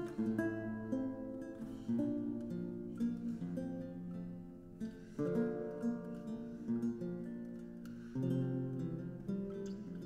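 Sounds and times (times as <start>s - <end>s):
plucked strings strumming chords: 0.0s - 10.0s.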